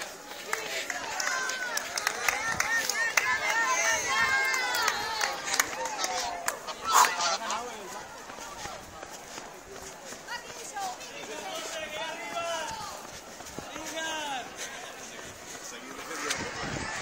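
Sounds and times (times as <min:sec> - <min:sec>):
spectators calling out: 0:00.0 - 0:09.3
running footfalls: 0:00.0 - 0:17.0.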